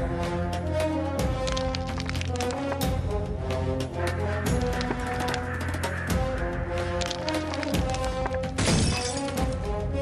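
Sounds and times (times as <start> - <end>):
theme music with held tones: 0.0 - 10.0
glass shattering effect: 8.6 - 9.4.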